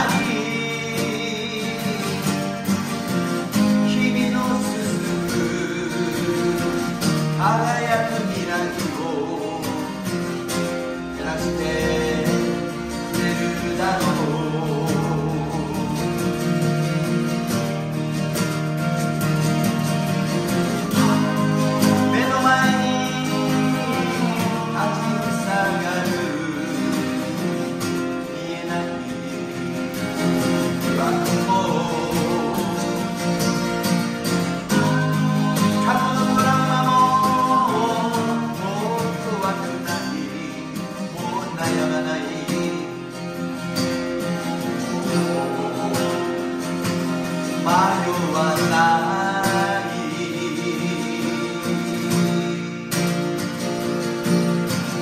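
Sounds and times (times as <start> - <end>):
person singing: 0.0 - 17.1, 20.6 - 52.7
acoustic guitars playing: 0.0 - 55.0.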